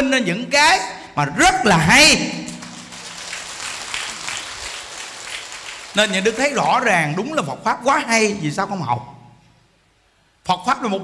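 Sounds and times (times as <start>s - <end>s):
audience applauding: 2.5s - 7.0s.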